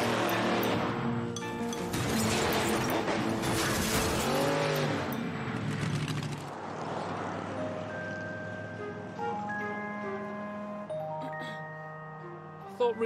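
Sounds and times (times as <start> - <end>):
background music: 0.0 - 5.2, 7.3 - 13.0
truck engine revving loudly: 2.0 - 7.3.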